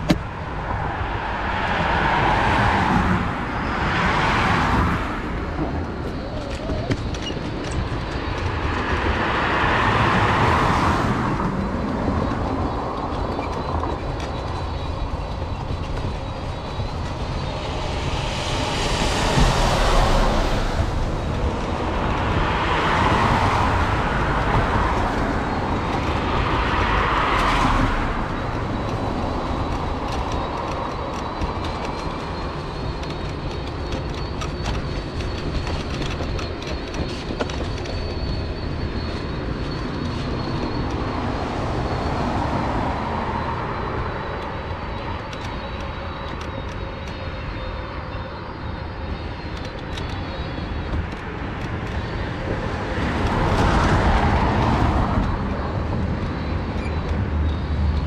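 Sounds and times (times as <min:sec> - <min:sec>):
mobility scooter rumble: 0:00.0 - 0:58.0
road traffic passing: 0:00.0 - 0:58.0.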